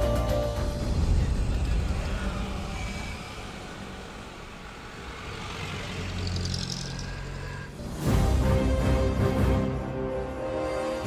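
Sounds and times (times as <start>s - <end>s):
cars and motorbikes driving past: 0.9s - 8.2s.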